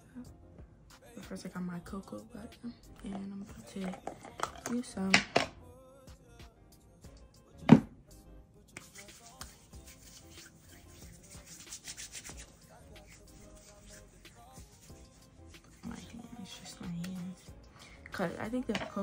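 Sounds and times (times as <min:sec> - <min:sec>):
faint background music: 0:00.0 - 0:19.0
hands rubbing skin: 0:08.7 - 0:17.4.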